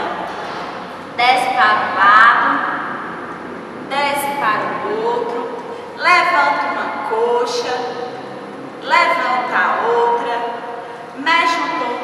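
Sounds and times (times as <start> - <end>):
woman speaking: 0.0 - 0.3, 1.2 - 2.7, 3.9 - 8.2, 8.8 - 10.6, 11.2 - 12.0.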